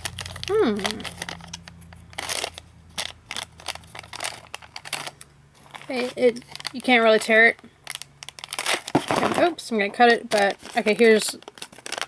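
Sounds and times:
candy wrapper crinkling: 0.0s - 12.0s.

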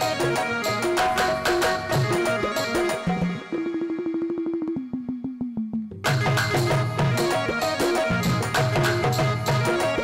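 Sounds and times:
devotional music ensemble: 0.0s - 10.0s.

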